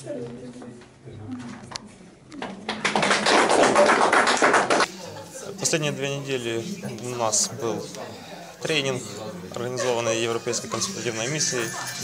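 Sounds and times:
small group applauding: 2.4 - 5.0.

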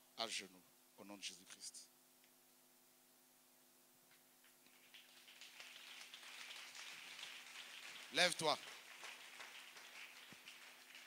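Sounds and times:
faint room hiss and hum: 0.0 - 11.0.

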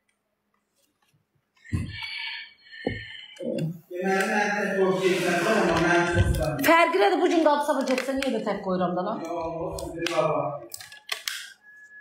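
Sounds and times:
young woman's voice: 6.6 - 9.2.

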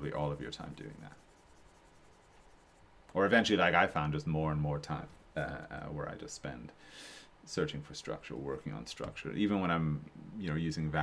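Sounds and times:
stylus scratching on tablet: 0.0 - 3.5.

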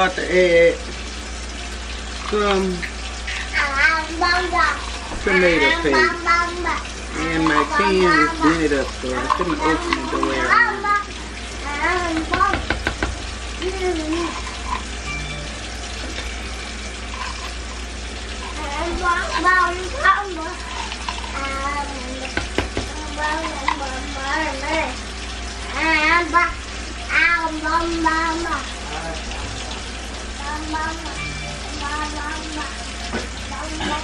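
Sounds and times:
vegetables sizzling in pot: 0.0 - 34.0
high-pitched voice speaking: 3.5 - 12.6.

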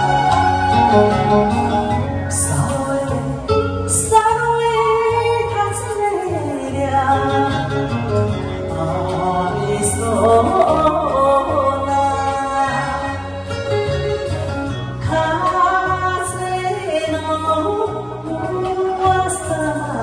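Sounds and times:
ballad backing track: 0.0 - 20.0
woman singing into a microphone: 0.0 - 20.0.

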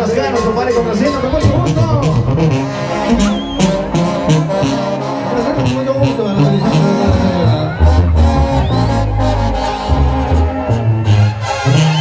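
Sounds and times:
live brass band music: 0.0 - 12.0
tuba bass line: 0.0 - 12.0.

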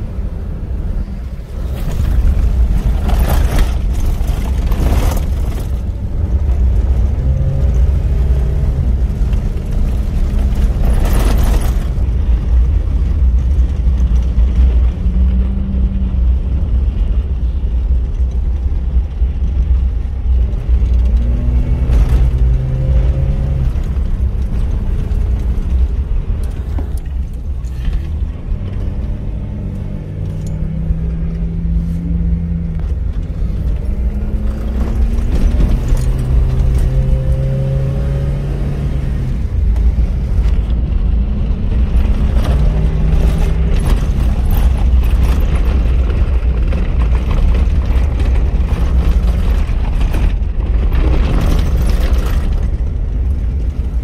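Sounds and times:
off-road vehicle engine rumble: 0.0 - 54.0.

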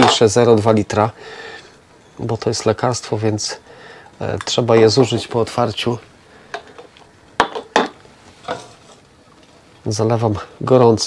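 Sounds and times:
kitchenware clinking and knocking: 6.6 - 9.0.

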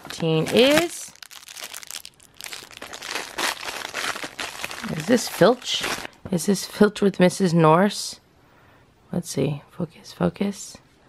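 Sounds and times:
plastic wrapper crinkling: 0.0 - 6.2.

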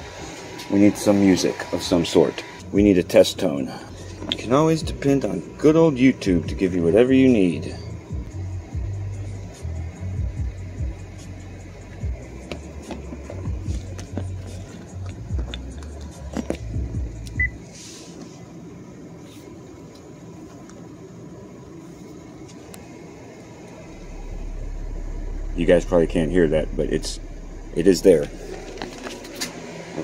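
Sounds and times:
low choppy music: 2.6 - 17.6, 23.8 - 29.4
very low test tone: 23.8 - 29.2.

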